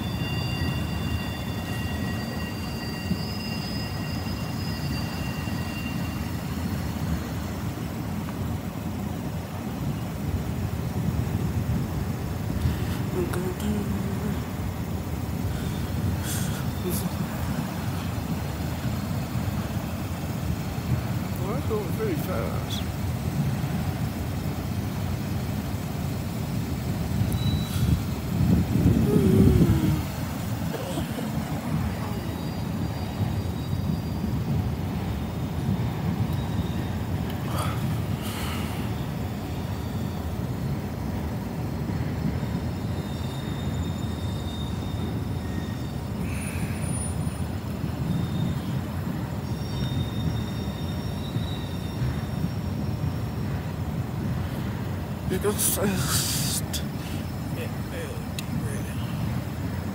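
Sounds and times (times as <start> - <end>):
faint high squeals: 0.0 - 7.3, 27.2 - 34.5, 36.3 - 37.7, 42.4 - 53.6
train wheels rumbling on rails: 0.0 - 59.9.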